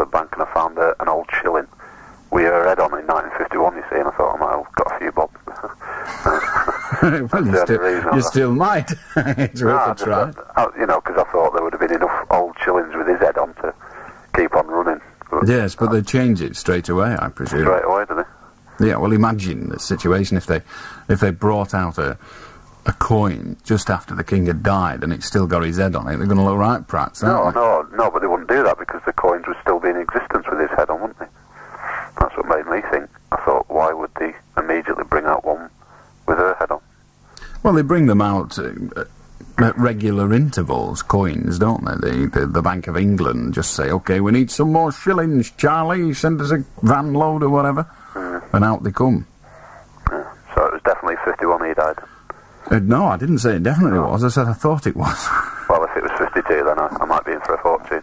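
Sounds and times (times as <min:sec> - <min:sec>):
radio phone-in talk: 0:00.0 - 0:06.2, 0:07.0 - 0:08.8, 0:09.5 - 0:16.5, 0:17.2 - 0:19.1, 0:27.2 - 0:36.9, 0:46.3 - 0:48.7, 0:50.0 - 0:52.8, 0:55.7 - 0:58.0.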